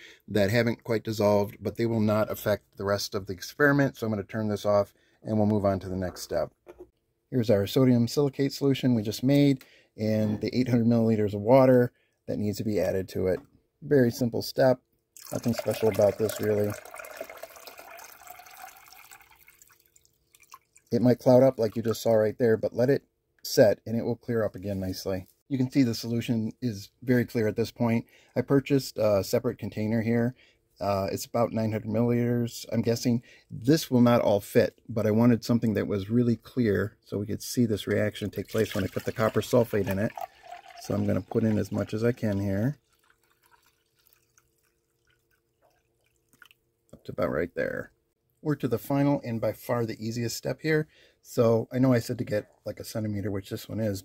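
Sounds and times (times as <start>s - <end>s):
liquid dripping into glass: 15.2s - 20.9s, 38.4s - 46.7s
water pouring into glass beaker: 15.2s - 20.9s, 38.3s - 46.7s.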